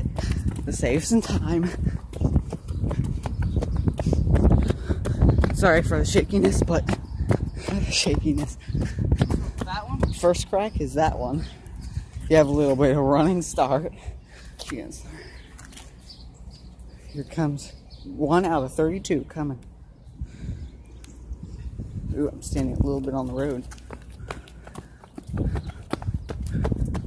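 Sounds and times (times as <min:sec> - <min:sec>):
wind rumble: 0:00.0 - 0:12.9, 0:20.0 - 0:27.0
jogging footsteps on concrete: 0:00.0 - 0:27.0.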